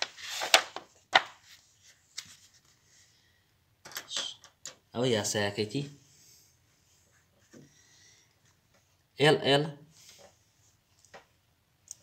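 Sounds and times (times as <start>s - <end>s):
paper pages rustling: 0.0s - 3.0s.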